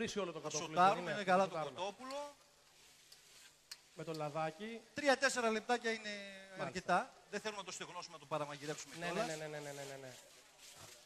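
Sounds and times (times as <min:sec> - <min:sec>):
man speaking: 0:00.0 - 0:02.4, 0:04.0 - 0:10.3.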